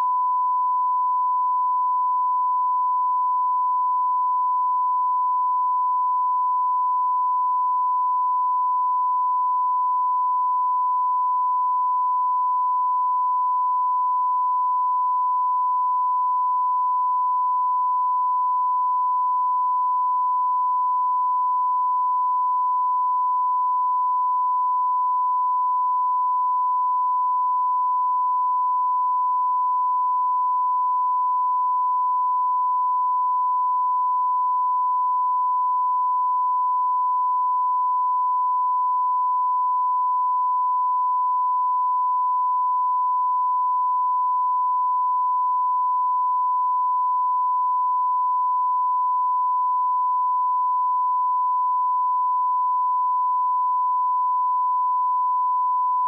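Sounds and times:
steady test tone beep: 0.0s - 56.0s.

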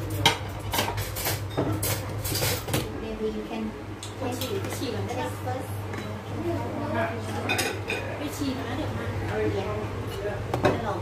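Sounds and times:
dishes and cutlery clinking: 0.0s - 2.9s, 7.2s - 8.1s.

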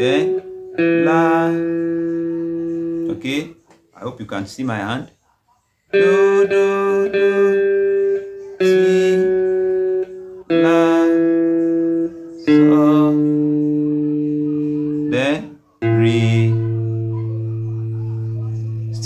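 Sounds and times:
guitar slide: 0.0s - 3.5s, 5.9s - 19.0s
guitar single held notes: 0.0s - 3.7s, 5.9s - 19.0s.

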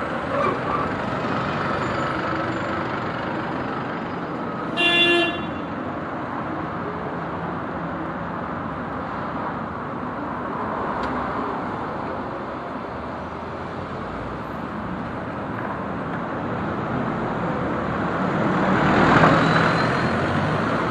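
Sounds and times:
buses and cars passing: 0.0s - 20.9s.

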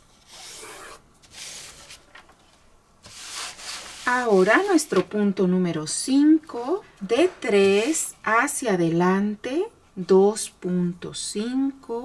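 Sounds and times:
plastic ruler scraping across paper: 0.2s - 2.0s.

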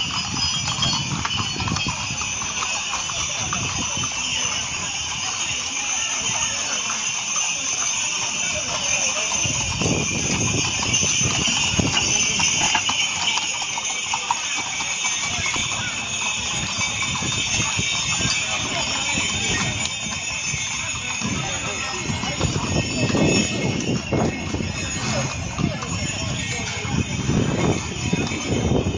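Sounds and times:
horse hooves clopping on stone: 0.0s - 28.9s
people talking: 0.0s - 28.9s.

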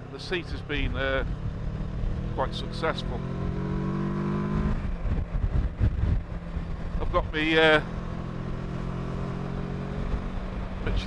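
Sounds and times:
motorcycle engine cruising: 0.0s - 11.0s
road noise: 0.0s - 11.0s
wind noise: 3.4s - 7.4s, 8.0s - 11.0s.

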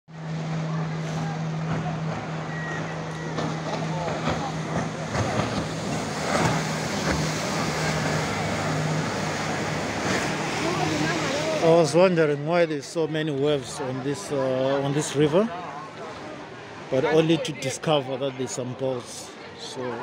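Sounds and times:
boat engine humming: 0.1s - 20.0s
river water rushing and splashing: 0.1s - 20.0s
people chattering: 0.2s - 20.0s.

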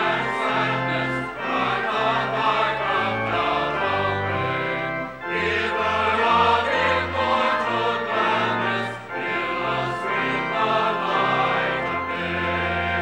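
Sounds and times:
choir singing sacred music: 0.0s - 13.0s.

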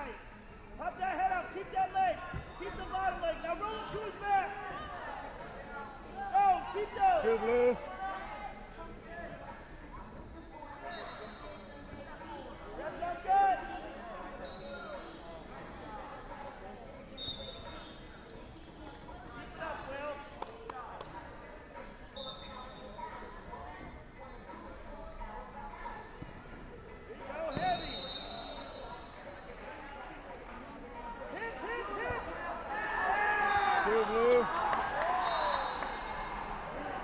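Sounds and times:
voices echoing in a hall: 0.0s - 37.0s
referee's whistle blast: 27.5s - 28.8s, 35.2s - 36.1s.

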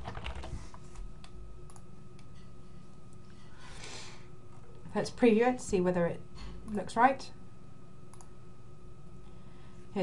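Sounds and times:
faint constant whine: 0.0s - 10.0s
low background hum: 0.0s - 10.0s
computer mouse click: 1.2s - 2.3s, 8.1s - 8.4s.

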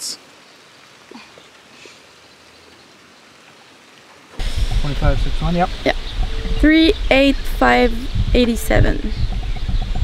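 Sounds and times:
outdoor background hiss: 0.0s - 9.5s
wind on microphone: 4.4s - 10.0s.

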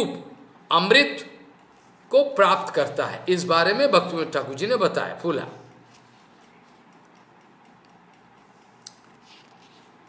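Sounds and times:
soft irregular ticks: 4.0s - 10.0s.

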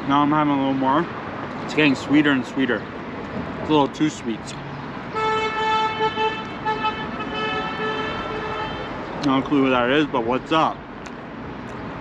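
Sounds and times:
car horn tooting: 5.1s - 9.0s.

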